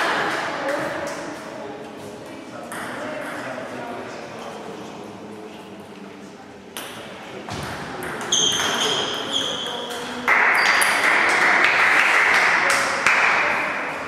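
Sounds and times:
table tennis ball hits: 6.8 - 9.1, 10.3 - 13.6.

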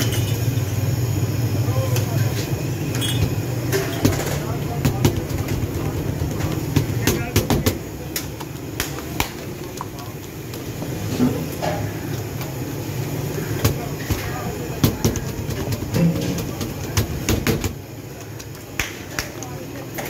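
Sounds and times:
street traffic rumble: 0.0 - 20.0
hands slapping dough: 6.5 - 10.0, 16.6 - 19.5.

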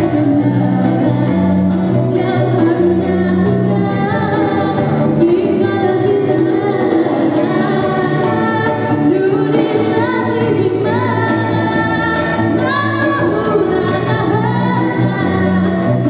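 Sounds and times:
small band playing: 0.0 - 16.0
steady bass line: 0.0 - 16.0
woman singing: 0.0 - 16.0.

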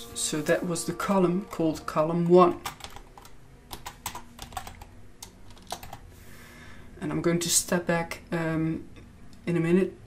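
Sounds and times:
computer keyboard typing: 2.5 - 6.0.

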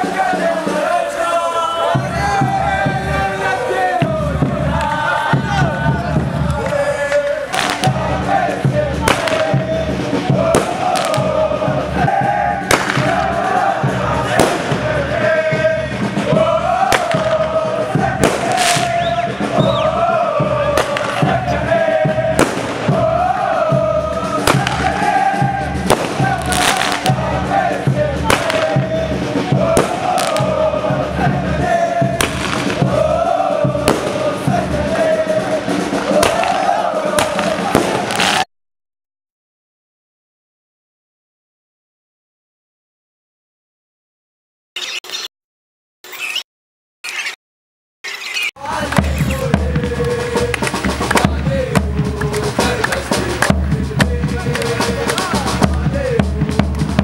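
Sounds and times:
crowd chanting: 0.0 - 38.5, 48.6 - 57.0
firecrackers banging: 6.2 - 8.3, 9.0 - 11.7, 12.6 - 15.4, 16.1 - 19.8, 20.4 - 23.2, 24.2 - 31.2, 32.0 - 33.0, 33.7 - 38.5, 48.8 - 57.0.

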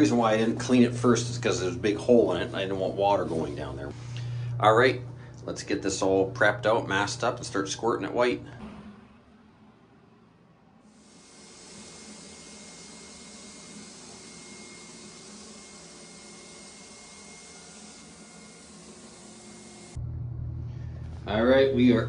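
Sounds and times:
low hum: 0.1 - 10.9, 19.8 - 22.0.

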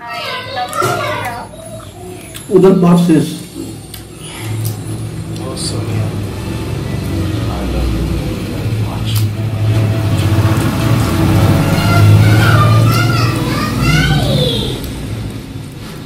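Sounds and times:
voices in background: 0.0 - 9.4
vehicle engine hum: 3.4 - 16.0.

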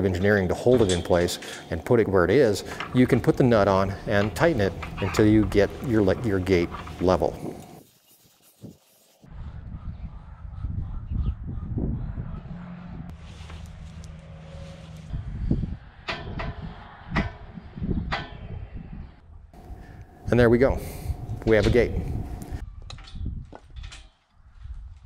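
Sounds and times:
metal gate knocks and clanks: 0.0 - 7.3, 16.0 - 17.5, 18.1 - 18.5
low wind rumble: 9.3 - 25.0.

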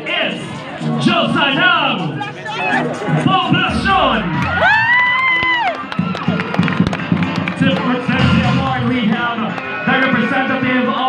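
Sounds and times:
audience cheering and clapping: 3.9 - 7.4.

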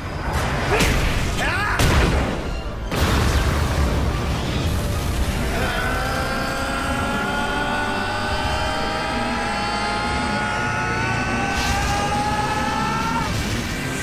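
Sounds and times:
strained battle yell: 5.4 - 13.4.

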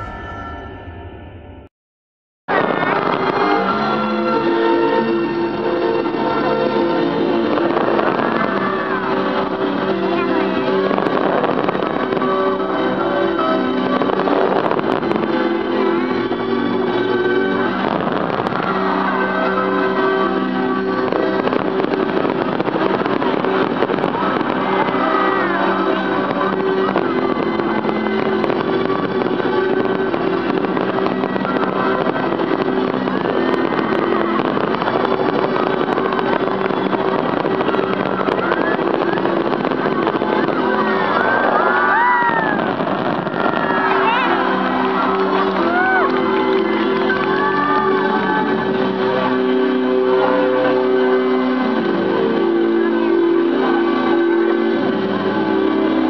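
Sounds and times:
music with long held notes: 0.0 - 1.7, 2.5 - 56.0
fireworks crackling: 2.5 - 56.0.

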